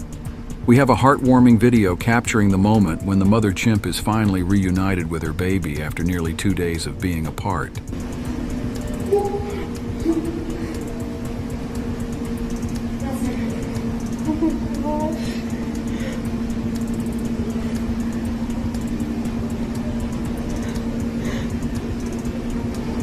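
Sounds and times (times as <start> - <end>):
droning hum: 0.0 - 23.0.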